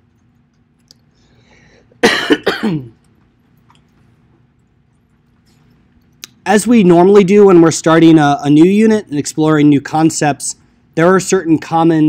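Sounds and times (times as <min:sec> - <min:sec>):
man clearing his throat: 0:02.0 - 0:03.0.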